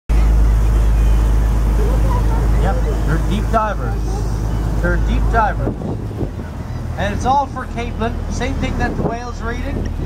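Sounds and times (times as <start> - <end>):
boat engine humming: 0.1 - 10.0.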